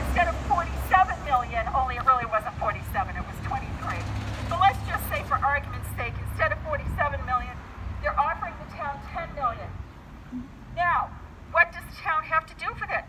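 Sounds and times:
woman speaking through megaphone: 0.0s - 9.8s, 10.8s - 13.0s
road traffic rumble: 0.0s - 13.0s.

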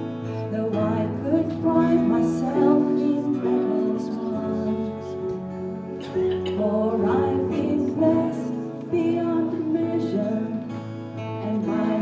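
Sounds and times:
slow worship music with guitar: 0.0s - 12.0s.

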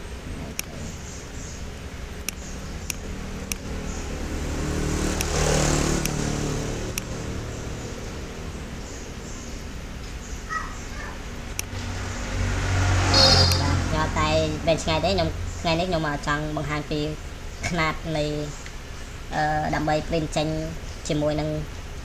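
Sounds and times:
motor vehicle engine hum: 0.0s - 22.0s
computer mouse clicks: 5.2s - 5.4s, 6.0s - 6.2s.

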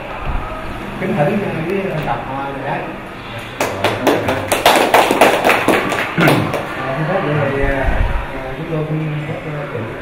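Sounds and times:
small group clapping: 3.4s - 6.8s.

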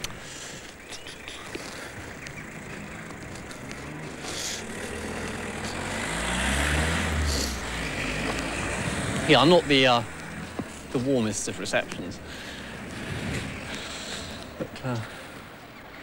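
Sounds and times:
vehicle engine passing: 1.6s - 15.4s.

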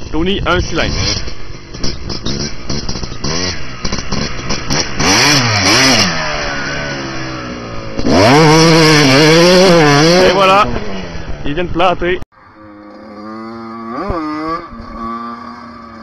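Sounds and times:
dirt bike engine revving: 0.4s - 11.7s, 12.4s - 16.0s.

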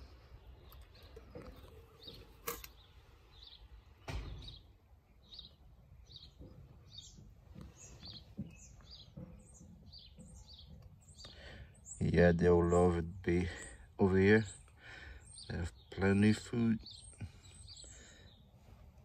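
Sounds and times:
small bird chirps: 0.1s - 18.5s.

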